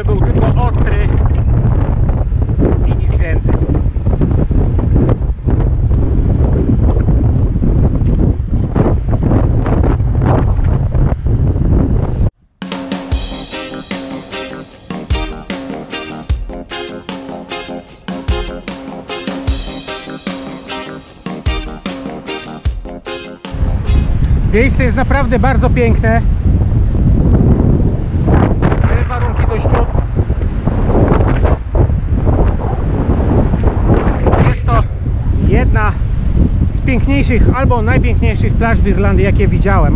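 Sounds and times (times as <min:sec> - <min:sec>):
strong wind buffeting microphone: 0:00.0 - 0:12.4, 0:23.5 - 0:39.9
guitar music: 0:12.6 - 0:24.6.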